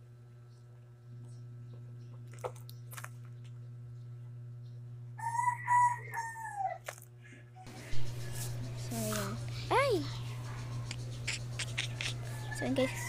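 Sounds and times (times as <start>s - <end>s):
steady low hum: 0.0s - 13.0s
rooster crowing: 5.2s - 6.8s, 11.6s - 13.0s.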